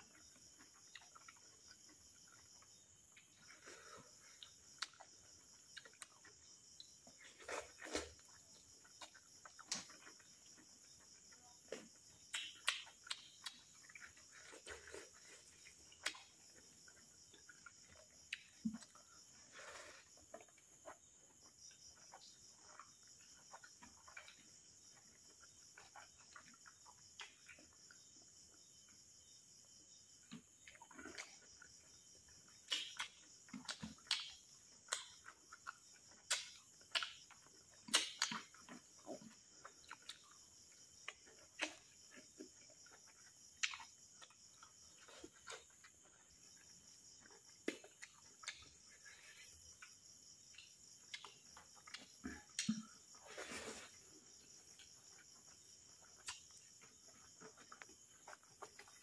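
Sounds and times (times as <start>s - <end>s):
wet chewing: 0.1s - 28.3s, 30.6s - 49.1s, 54.2s - 59.0s.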